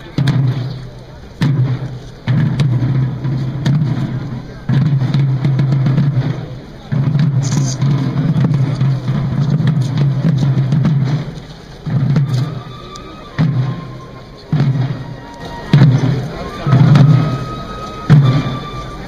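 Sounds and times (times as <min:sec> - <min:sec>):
crowd voices: 0:00.0 - 0:19.0
drum rolls: 0:00.0 - 0:19.0.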